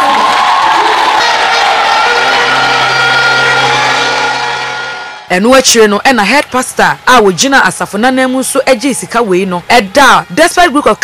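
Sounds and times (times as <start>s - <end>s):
crowd cheering and applauding: 0.0s - 5.3s
music with long held notes: 1.2s - 5.3s.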